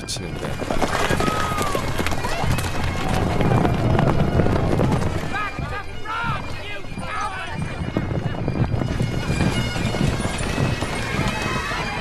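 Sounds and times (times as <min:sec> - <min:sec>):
horses hooves galloping: 0:00.0 - 0:12.0
voices: 0:00.0 - 0:12.0.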